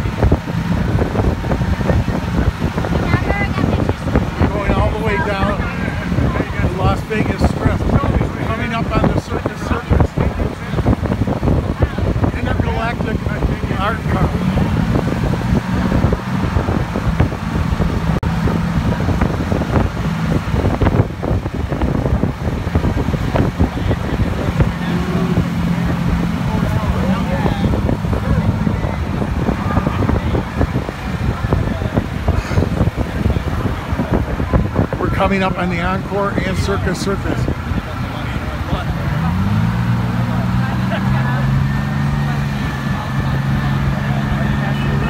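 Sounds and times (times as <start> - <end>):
vehicle and traffic noise: 0.0 - 45.0
wind buffeting microphone: 0.0 - 45.0.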